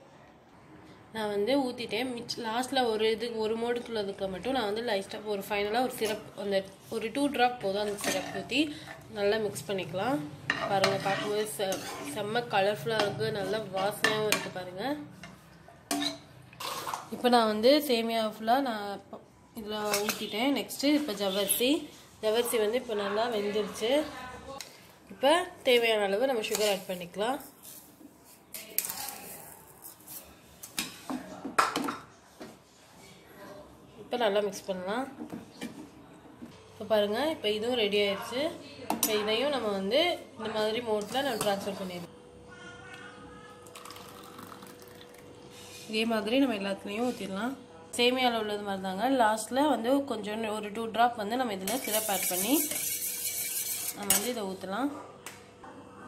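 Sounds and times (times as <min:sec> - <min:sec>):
spatula scraping metal saucepan: 0:07.7 - 0:09.0, 0:10.4 - 0:14.6, 0:19.8 - 0:21.2, 0:26.4 - 0:27.1, 0:51.6 - 0:54.5
liquid pouring: 0:43.6 - 0:45.3.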